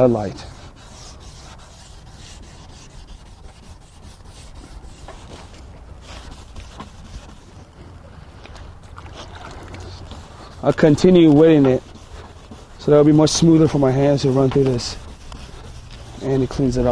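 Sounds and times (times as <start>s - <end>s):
sandpaper rubbing on plastic: 0.0s - 7.7s, 9.9s - 16.9s.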